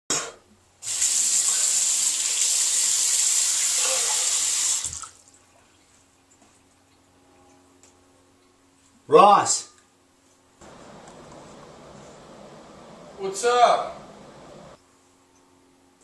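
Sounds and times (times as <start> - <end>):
sink tap running water: 0.8 - 5.1, 10.6 - 14.8.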